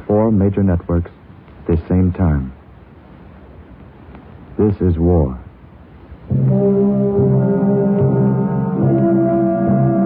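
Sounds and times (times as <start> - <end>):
orchestral brass chords: 6.3 - 10.0.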